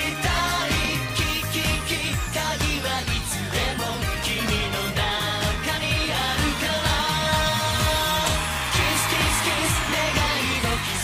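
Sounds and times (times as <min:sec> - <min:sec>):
pop song with male vocal: 0:00.0 - 0:11.0.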